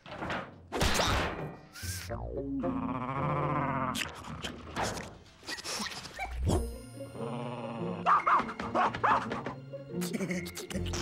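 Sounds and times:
cartoon background music: 0.9s - 4.1s, 6.2s - 11.0s.

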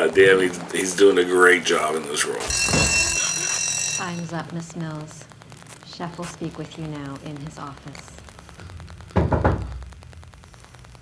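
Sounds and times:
knocking on a door: 9.2s - 9.8s.

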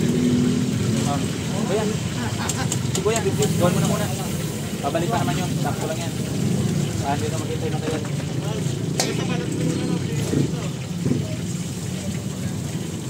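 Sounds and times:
background chatter: 0.8s - 13.0s.

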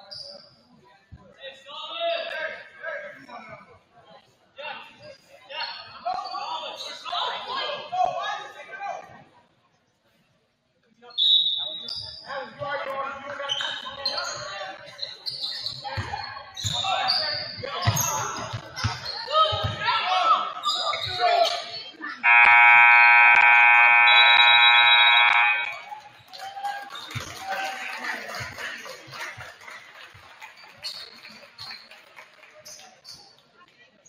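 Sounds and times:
crowd voices: 12.9s - 34.0s
sneakers squeaking on hardwood: 13.4s - 20.0s, 20.6s - 21.9s
basketball bouncing: 17.8s - 19.9s
scoreboard horn blast: 22.3s - 25.8s.

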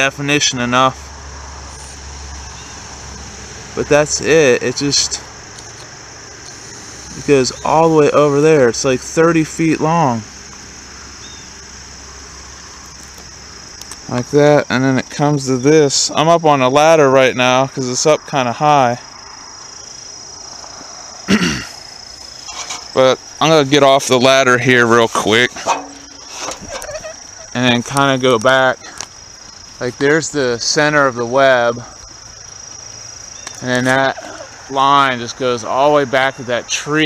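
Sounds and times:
high-pitched hiss: 0.0s - 37.0s
insects chirring: 0.0s - 37.0s.

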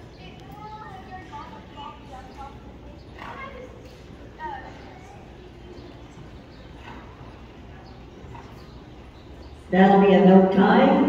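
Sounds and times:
indistinct voices talking: 0.0s - 11.0s.

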